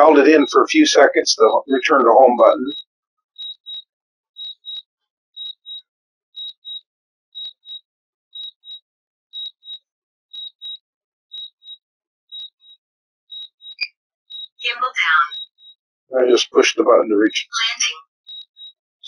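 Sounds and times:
remote controller high beeps: 0.0s - 2.8s, 14.6s - 15.4s.

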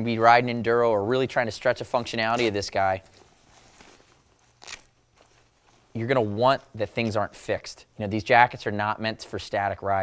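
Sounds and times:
jacket fabric rustle: 0.1s - 7.5s
velcro ripping open: 2.2s - 5.8s.

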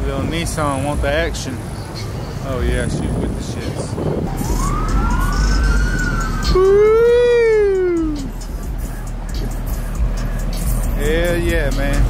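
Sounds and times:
street traffic noise: 0.0s - 12.0s
siren wailing: 4.2s - 8.4s.

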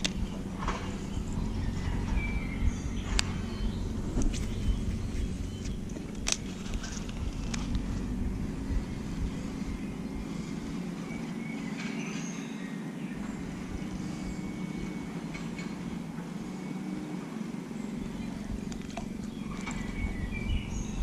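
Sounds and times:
reel clicks: 0.0s - 1.3s, 4.1s - 8.1s, 18.6s - 19.9s.

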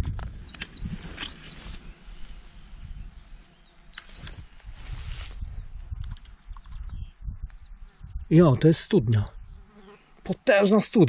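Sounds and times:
insect buzzing: 9.4s - 10.2s.

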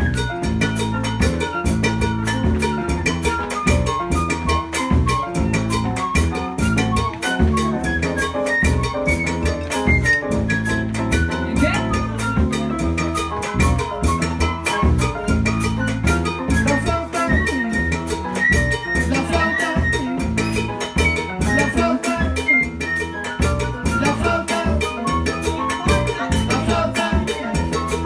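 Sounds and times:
salsa band playing: 0.0s - 28.0s.

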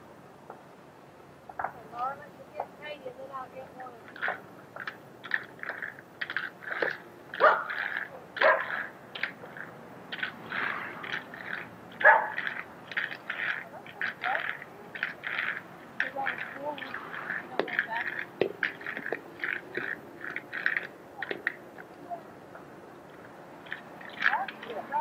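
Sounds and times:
roller skate wheels on asphalt: 1.5s - 25.0s.

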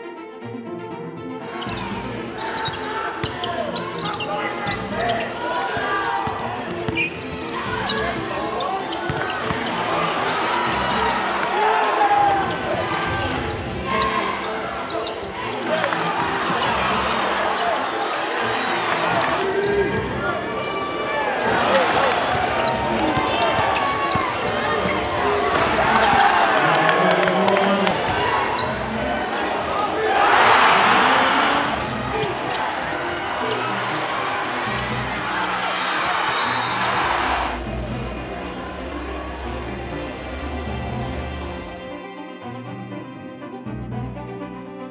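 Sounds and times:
crowd voices: 1.4s - 43.4s
crowd cheering: 1.7s - 41.8s
basketball bouncing on court: 9.0s - 9.8s, 22.1s - 26.3s.

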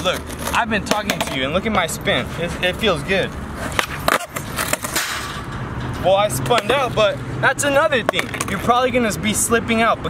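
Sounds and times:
skateboard clacking on concrete: 0.0s - 1.5s, 3.6s - 5.2s, 6.5s - 7.0s, 8.0s - 8.8s
skateboard wheels rolling: 0.0s - 5.5s, 8.0s - 9.0s.

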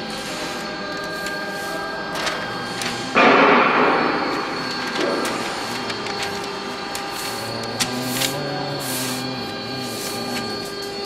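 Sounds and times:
workshop hum: 0.0s - 11.0s
paper sliding on table: 4.8s - 10.7s.

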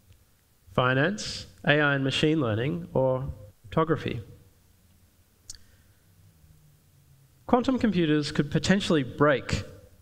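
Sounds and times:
low hum: 1.5s - 9.2s.

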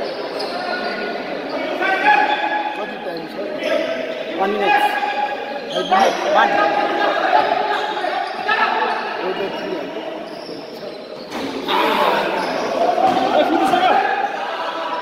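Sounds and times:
voices calling: 0.1s - 15.0s.

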